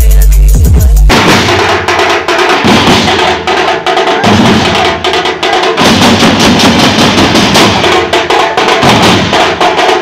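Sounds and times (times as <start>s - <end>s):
drum band playing fast: 0.0s - 10.0s.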